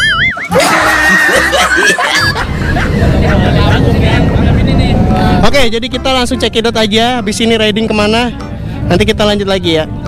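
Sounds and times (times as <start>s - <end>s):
young men laughing: 0.0s - 4.4s
low rumble: 1.0s - 10.0s
men talking: 2.5s - 10.0s.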